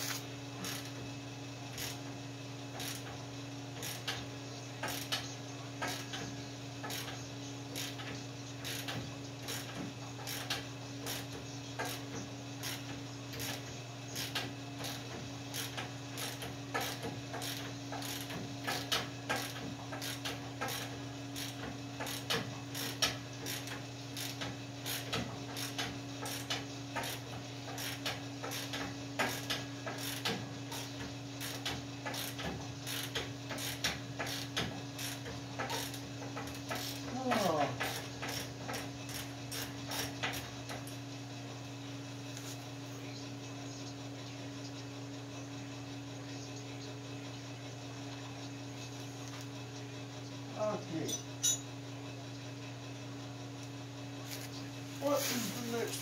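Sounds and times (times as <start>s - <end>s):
ratchet wrench clicking: 0.0s - 1.0s, 1.7s - 2.0s, 2.8s - 3.1s, 4.8s - 5.2s, 6.8s - 7.2s, 7.8s - 13.6s, 14.2s - 37.0s
steady low hum: 0.0s - 56.0s.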